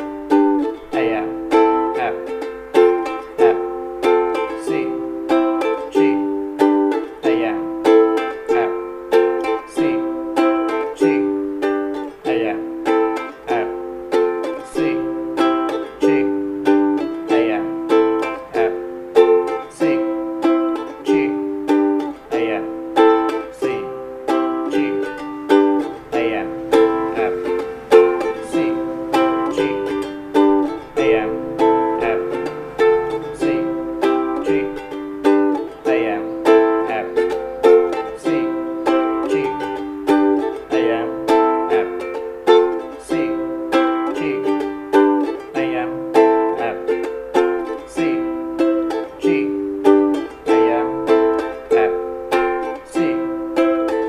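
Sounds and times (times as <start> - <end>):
ukulele strumming: 0.0 - 54.0.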